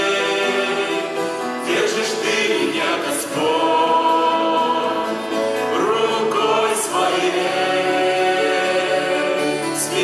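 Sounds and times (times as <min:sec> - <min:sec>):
group singing worship song in harmony: 0:00.0 - 0:10.0.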